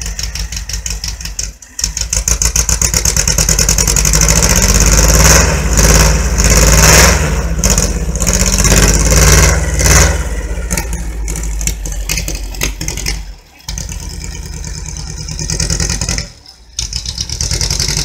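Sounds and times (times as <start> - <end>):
car engine revving: 0.0 - 18.0.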